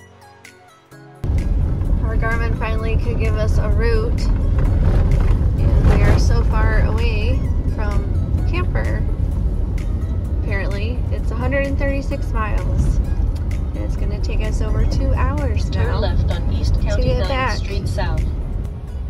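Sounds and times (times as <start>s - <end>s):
truck tyres rumbling on dirt road: 1.2s - 19.0s.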